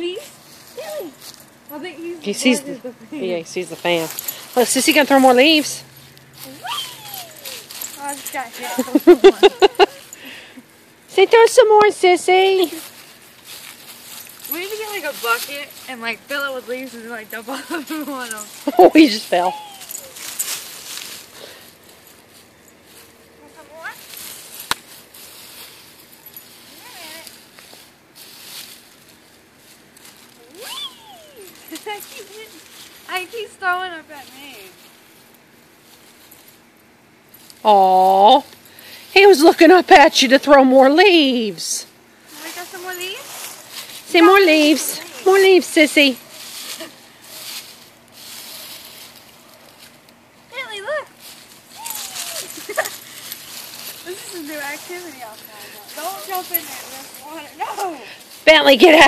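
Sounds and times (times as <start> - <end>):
dry leaves rustling and crunching: 0.0 - 59.0.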